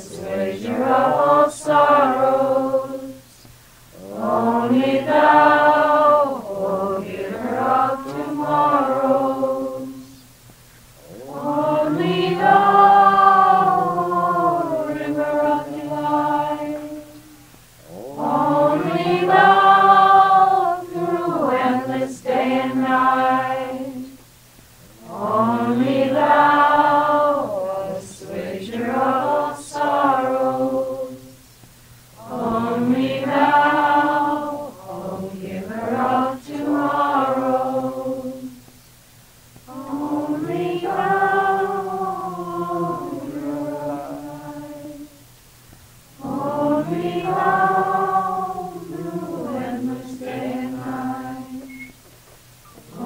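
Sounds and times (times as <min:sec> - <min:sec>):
group chanting devotional chant: 0:00.0 - 0:51.9, 0:52.6 - 0:53.0.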